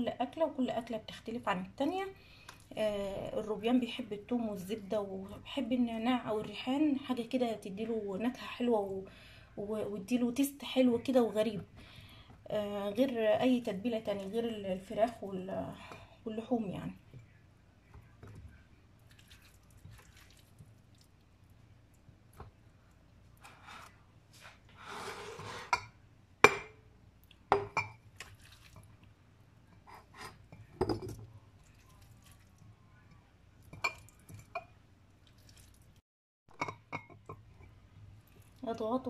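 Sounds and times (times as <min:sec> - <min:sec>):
glass jars clinking: 0:30.2 - 0:31.2.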